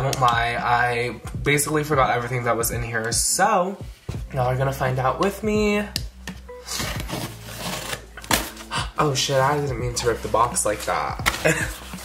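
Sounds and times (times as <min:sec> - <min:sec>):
cardboard ripping: 0:06.7 - 0:08.8, 0:11.2 - 0:12.0.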